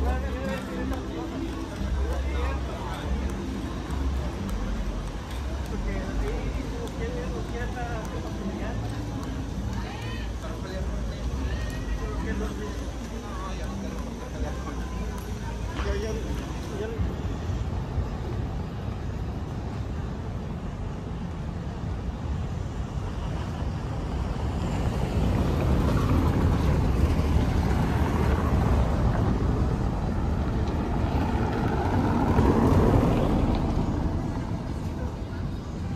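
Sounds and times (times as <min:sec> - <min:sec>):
car tyres rumbling on cobblestones: 0:00.0 - 0:35.9.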